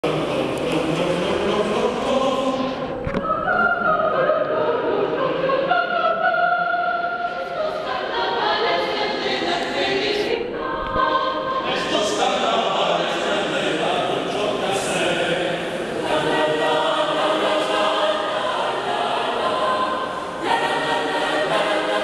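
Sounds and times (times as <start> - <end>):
mixed choir singing: 0.0 - 22.0.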